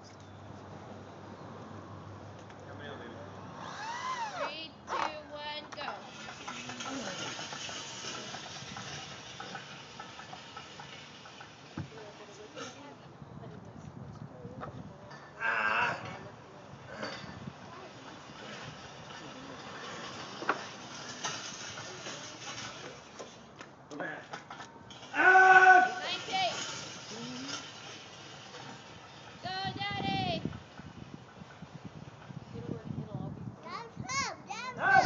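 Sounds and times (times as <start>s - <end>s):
people shouting encouragement: 25.1s - 26.6s, 34.1s - 35.0s.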